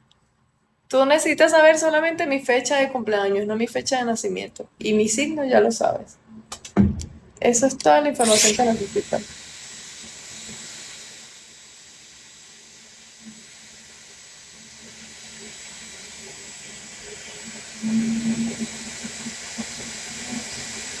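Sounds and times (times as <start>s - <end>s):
high motor whine: 8.2s - 20.6s
hair styler fan hissing: 8.2s - 21.0s.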